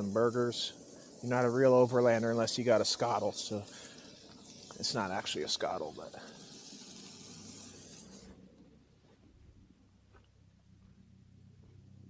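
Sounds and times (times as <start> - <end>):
burger patties sizzling on griddle: 0.0 - 8.3.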